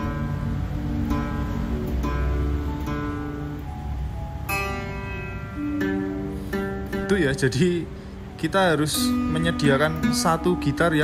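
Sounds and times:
classical guitar strings plucked: 0.0s - 7.9s, 8.7s - 11.0s.

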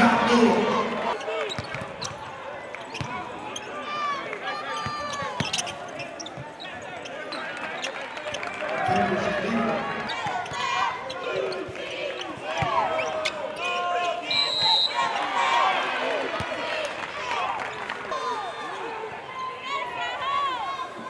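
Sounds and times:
players and spectators voices: 0.0s - 21.0s
sneakers squeaking: 0.6s - 4.0s, 4.7s - 9.2s, 10.0s - 15.0s
shrill whistle: 14.3s - 15.1s.

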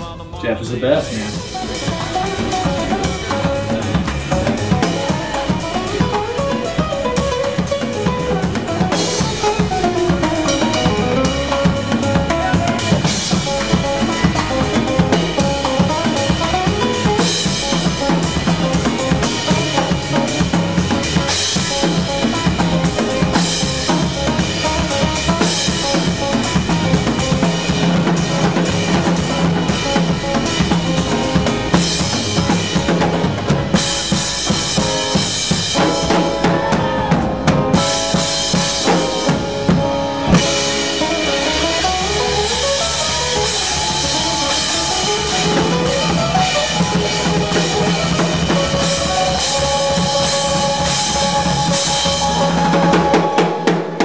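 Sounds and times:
bass drum and snare strokes: 1.0s - 54.0s.

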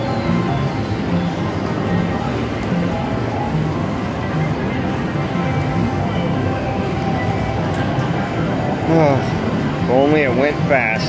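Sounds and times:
casino chatter: 0.0s - 11.0s.

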